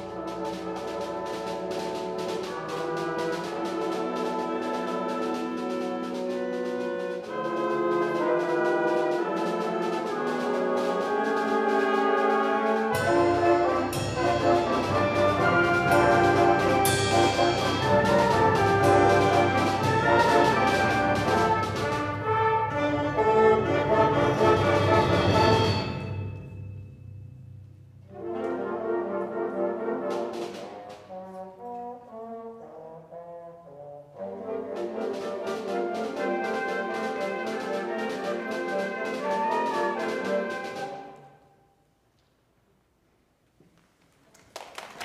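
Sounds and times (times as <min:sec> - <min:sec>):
concert band playing: 0:00.0 - 0:26.3, 0:28.1 - 0:31.7, 0:34.2 - 0:41.2.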